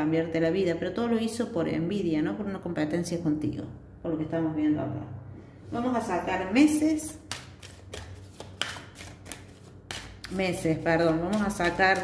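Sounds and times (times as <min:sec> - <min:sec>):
cards tapping and clicking: 0:07.1 - 0:12.0.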